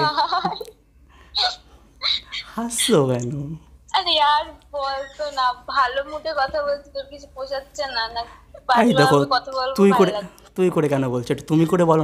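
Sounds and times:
man laughing: 0.0 - 0.8.

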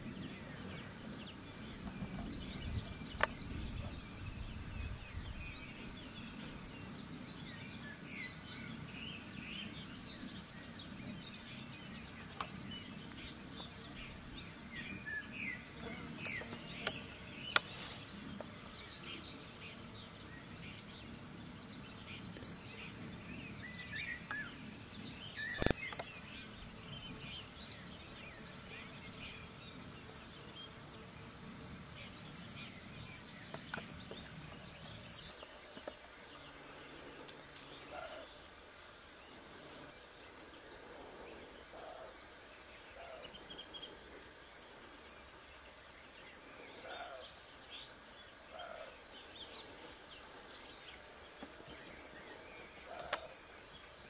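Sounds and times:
crickets trilling: 0.0 - 54.0
high insect buzz: 0.0 - 54.0.

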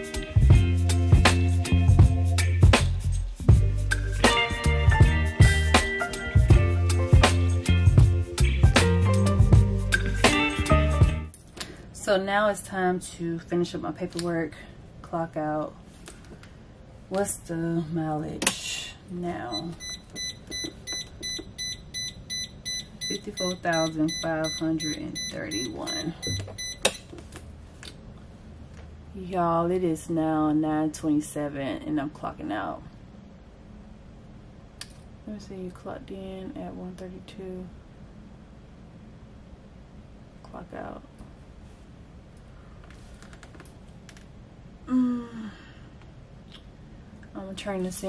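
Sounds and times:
low background hum: 11.3 - 48.0
high pitched warning beeps: 19.5 - 26.8.

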